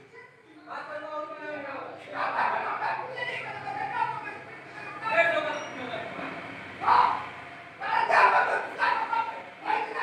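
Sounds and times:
voices calling loudly: 1.6s - 10.0s.

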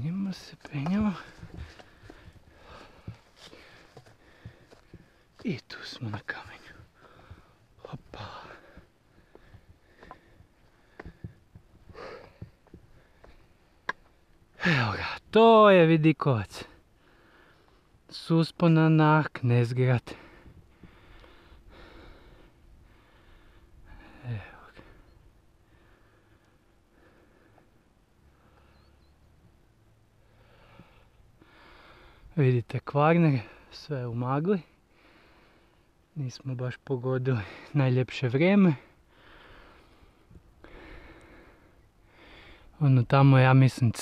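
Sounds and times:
footsteps on rocky path: 0.3s - 14.2s.

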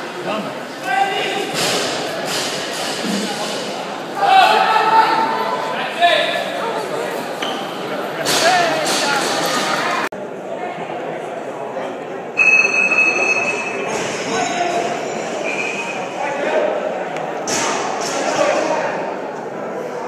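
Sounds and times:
spectators shouting and cheering: 0.0s - 10.1s.

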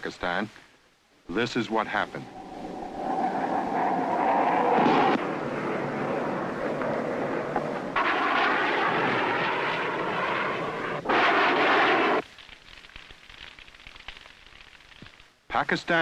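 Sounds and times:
jet fighter engine whine: 1.8s - 12.2s.

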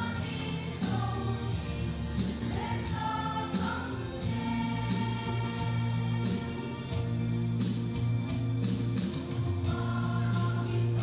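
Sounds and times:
choir singing gospel with accompaniment: 0.0s - 11.0s.

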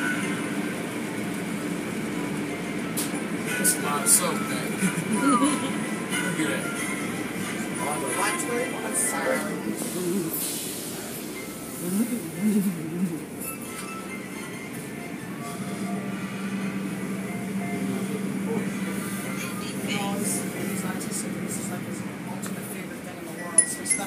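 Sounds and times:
car wash machinery hum: 0.0s - 24.0s.

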